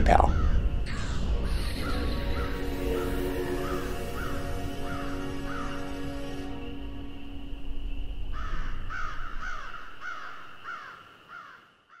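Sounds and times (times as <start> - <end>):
bird harsh calls: 0.3 - 7.4, 8.2 - 12.0.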